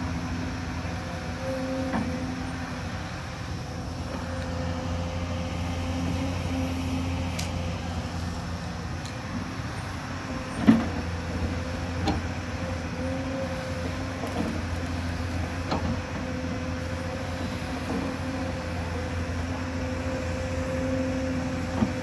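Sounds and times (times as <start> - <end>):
excavator engine and hydraulics: 0.0 - 22.0.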